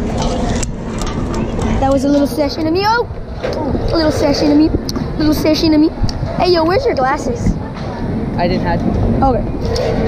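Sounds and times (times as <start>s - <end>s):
wind rumbling on microphone: 0.0s - 10.0s
faint voices: 0.1s - 10.0s
boy speaking: 1.8s - 8.1s, 9.2s - 9.5s.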